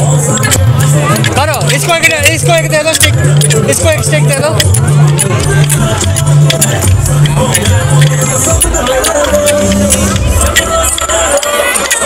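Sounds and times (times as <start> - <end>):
dance music with bass beat: 0.0 - 12.0
sticks clacking together: 0.1 - 12.0.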